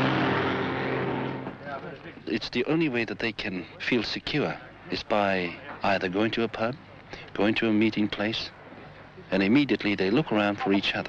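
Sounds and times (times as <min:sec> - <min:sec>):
heavy truck passing: 0:00.0 - 0:02.0
man speaking: 0:01.7 - 0:08.5, 0:09.3 - 0:11.0.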